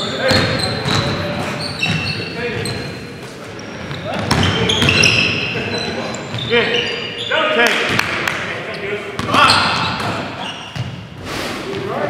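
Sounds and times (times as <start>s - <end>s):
sneaker squeaks: 0.0s - 7.7s, 8.7s - 12.0s
players calling out: 0.0s - 10.9s
basketball bouncing: 0.3s - 2.1s, 3.9s - 5.2s.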